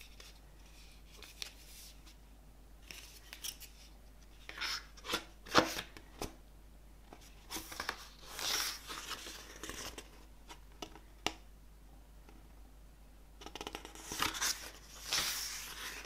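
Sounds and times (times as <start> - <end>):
book pages rustling and flapping: 0.0 - 2.2, 7.1 - 10.2, 14.0 - 16.0.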